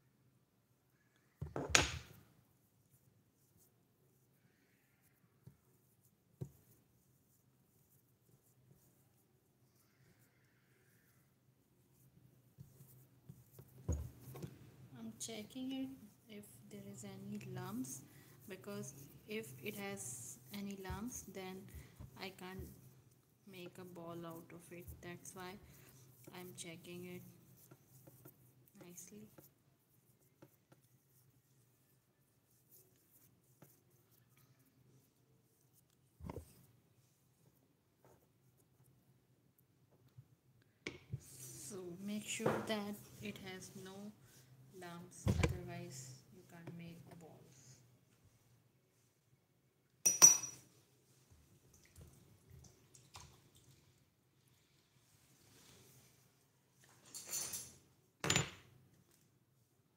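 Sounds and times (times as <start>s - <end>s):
small kitchenware clinking: 50.0s - 50.7s.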